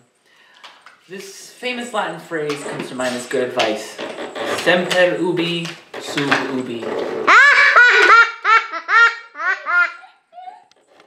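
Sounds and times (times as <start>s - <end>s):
young child laughing: 7.3s - 10.7s.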